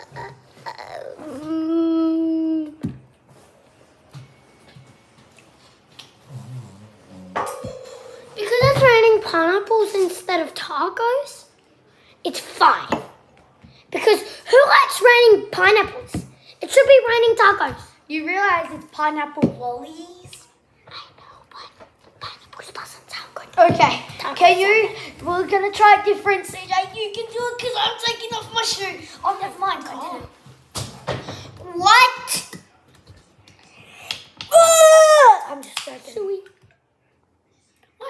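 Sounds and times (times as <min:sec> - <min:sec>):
child whispering: 0:20.9 - 0:23.6.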